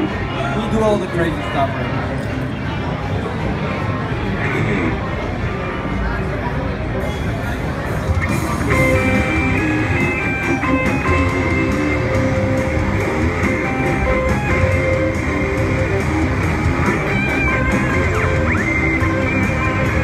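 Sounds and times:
electric guitars playing: 7.8 - 20.0.

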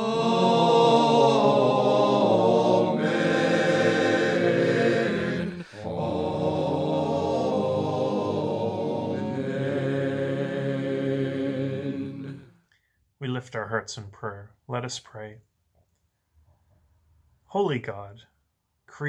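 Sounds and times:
choral chanting: 0.0 - 12.6.

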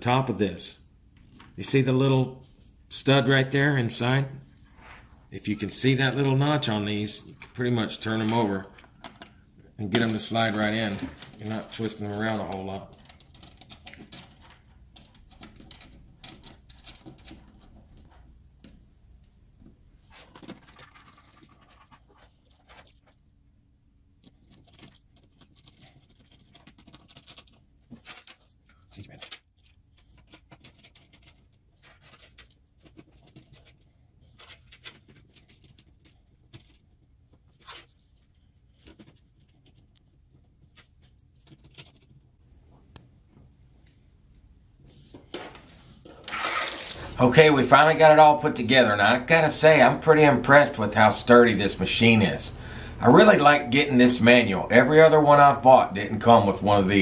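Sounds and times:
metal connectors clicking and rattling: 7.3 - 18.8, 20.1 - 23.2, 24.2 - 42.4.

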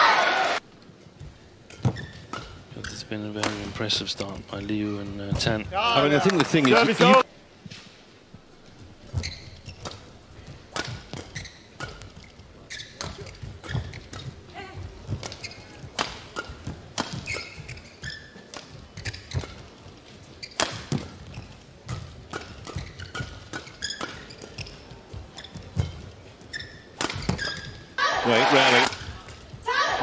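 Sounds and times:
shoes squeaking on court: 1.2 - 7.2, 8.6 - 29.8
rackets hitting shuttlecock: 3.4 - 3.8, 9.1 - 14.4, 15.1 - 17.8, 20.4 - 24.8, 26.9 - 27.8.

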